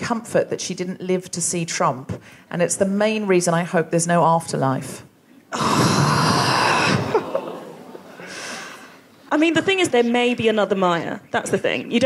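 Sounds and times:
audience sighing: 5.4s - 9.2s.

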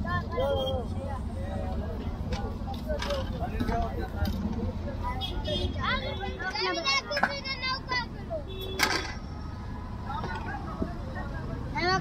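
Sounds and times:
people talking: 0.0s - 9.1s, 10.0s - 12.0s
traffic rumble: 0.0s - 12.0s.

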